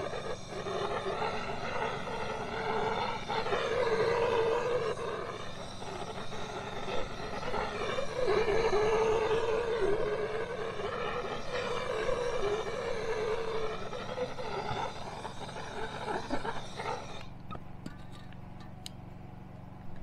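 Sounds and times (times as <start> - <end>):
propane torch burning: 0.0 - 20.0.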